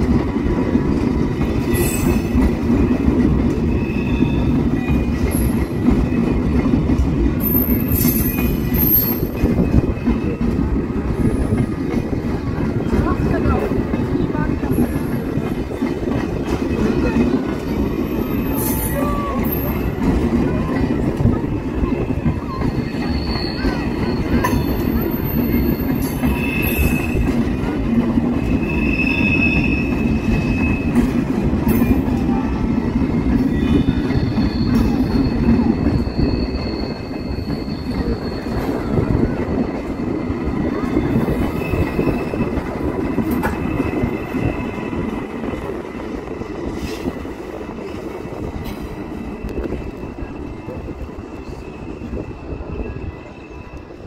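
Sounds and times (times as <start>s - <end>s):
train wheels rumbling on rail: 0.0s - 54.0s
high wheel squeals: 7.4s - 9.6s, 22.2s - 27.4s, 28.4s - 31.1s, 33.5s - 40.0s.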